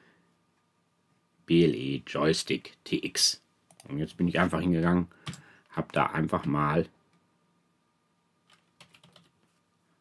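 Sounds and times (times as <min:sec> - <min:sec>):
faint keyboard keystrokes: 0:08.4 - 0:09.3.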